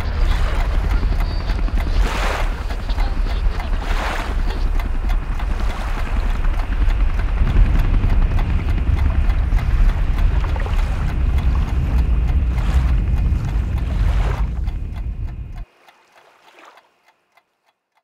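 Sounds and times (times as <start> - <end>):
wind and water rushing: 0.0 - 16.8.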